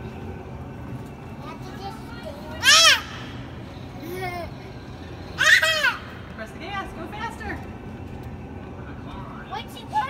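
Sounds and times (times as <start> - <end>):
truck simulator rumble: 0.0 - 2.6
child squealing: 2.6 - 3.3, 5.4 - 6.2.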